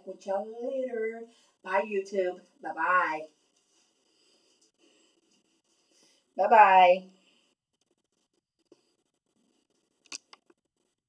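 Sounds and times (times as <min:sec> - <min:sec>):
small sharp clicks: 0:10.0 - 0:10.6.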